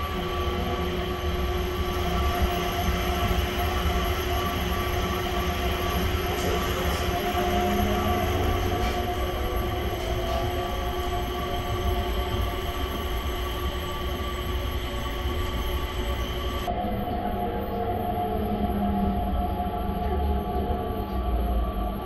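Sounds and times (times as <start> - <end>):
steady whining tones: 0.0 - 22.0
train low rumble: 0.0 - 22.0.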